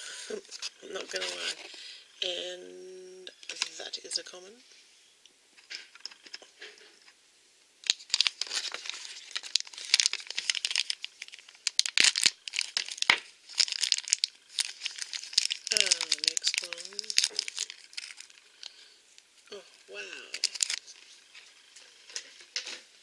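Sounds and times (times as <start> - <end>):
person humming: 2.2 - 3.3, 15.7 - 17.6, 19.5 - 20.5
plastic bag crinkling: 7.8 - 19.3, 20.3 - 22.7.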